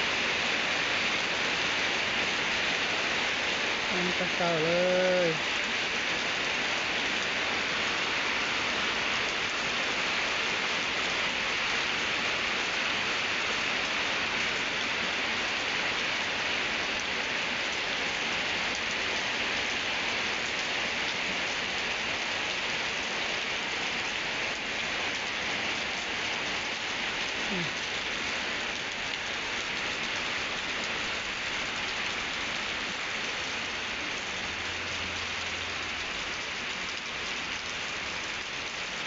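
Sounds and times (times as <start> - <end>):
rain on concrete and puddles: 0.0 - 39.0.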